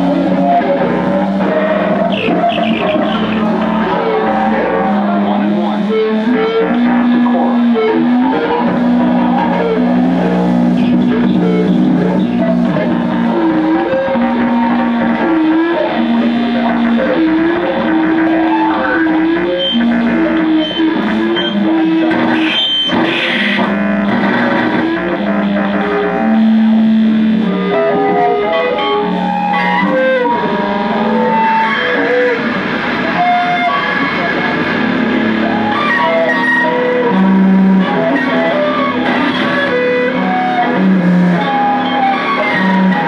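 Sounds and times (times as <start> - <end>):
distorted electric guitars: 0.0 - 43.0.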